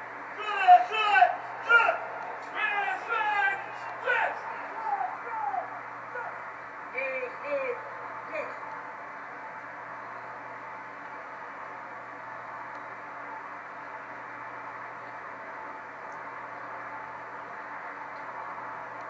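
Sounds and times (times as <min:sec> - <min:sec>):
faint low hum: 0:00.0 - 0:19.0
person calling out: 0:02.6 - 0:06.4.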